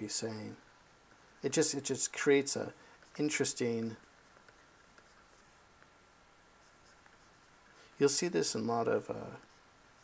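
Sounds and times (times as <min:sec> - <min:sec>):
pen stylus scratching on tablet: 0:00.5 - 0:10.0.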